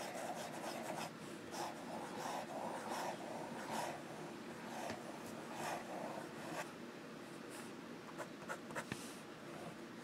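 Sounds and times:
pen nib scratching on paper: 0.0s - 6.6s.

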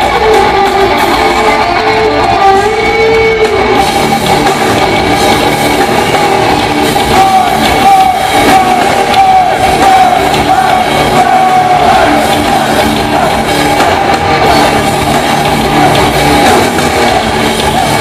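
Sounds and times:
drum kit: 0.0s - 18.0s
electric guitars: 0.0s - 18.0s
man singing: 7.0s - 14.9s.

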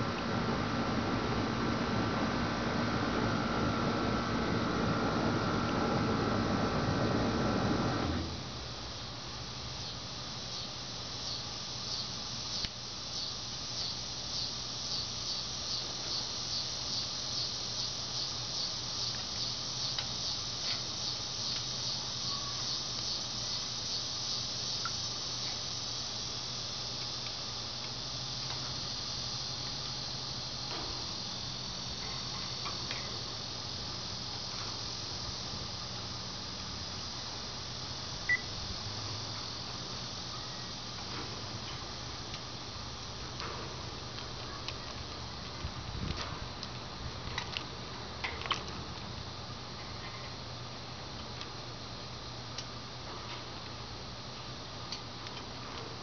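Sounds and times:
insects trilling: 8.0s - 56.0s
short high insect chirp: 9.4s - 41.0s.

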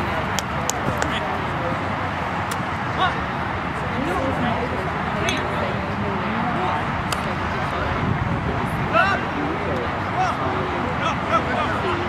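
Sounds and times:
people calling and chattering: 0.0s - 12.0s.

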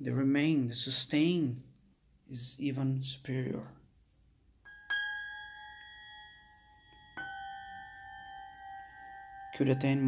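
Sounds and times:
tingshas ringing: 4.6s - 10.0s.

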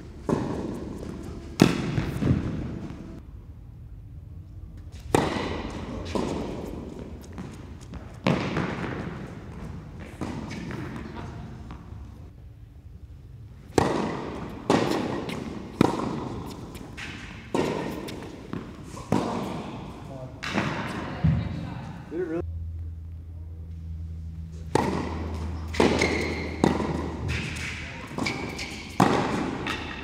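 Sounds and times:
echo of indoor court hall: 0.0s - 30.0s
tennis racquet hitting ball: 0.2s - 3.2s, 5.0s - 12.0s, 13.7s - 21.1s, 24.6s - 30.0s.

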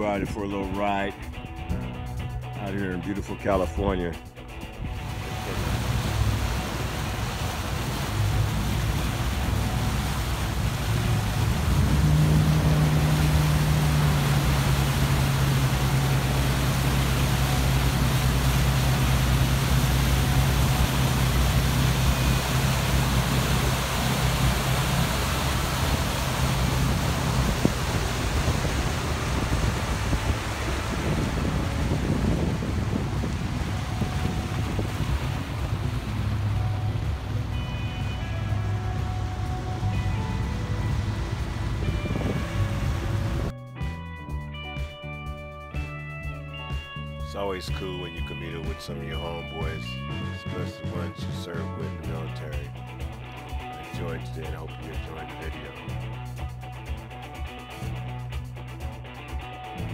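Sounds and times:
boat engine hum: 0.0s - 59.9s
water rushing: 4.7s - 43.5s, 47.4s - 59.0s
wind buffeting microphone: 19.2s - 43.5s.

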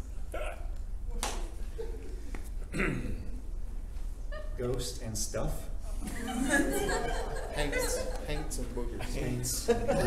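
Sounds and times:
men chuckling: 6.0s - 8.6s, 9.6s - 10.0s.

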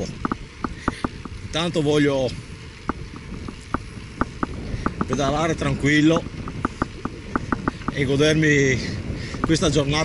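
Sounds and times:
bike clicks and rattles: 0.0s - 10.0s
tyres and wind rumble: 0.0s - 10.0s.

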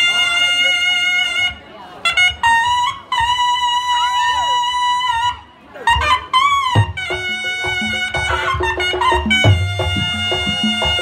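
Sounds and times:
reedy shawm melody: 0.0s - 11.0s
low drum beats: 6.7s - 11.0s.

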